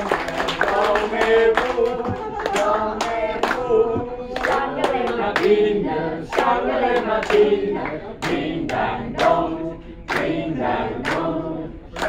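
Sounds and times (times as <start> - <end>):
hands clapping in a beat: 0.0 - 5.7, 6.3 - 12.0
group singing: 0.0 - 12.0.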